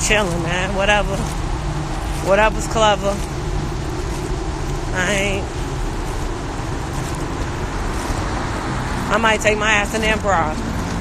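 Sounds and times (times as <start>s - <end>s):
street noise with low rumble: 0.0s - 11.0s.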